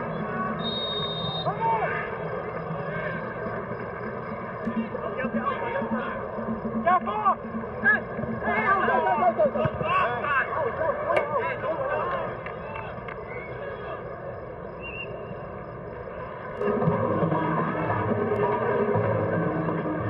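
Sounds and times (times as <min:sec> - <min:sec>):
players shouting: 0:00.0 - 0:03.4, 0:04.6 - 0:14.4
stadium crowd murmur: 0:00.0 - 0:20.0
referee's pea whistle blast: 0:00.6 - 0:01.6, 0:14.8 - 0:15.3.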